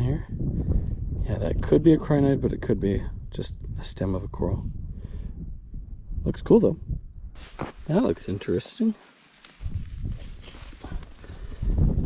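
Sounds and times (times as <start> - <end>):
wind buffeting microphone: 0.0 - 8.3, 9.5 - 12.0
rock picked up off grassy ground: 7.4 - 7.9, 9.0 - 12.0.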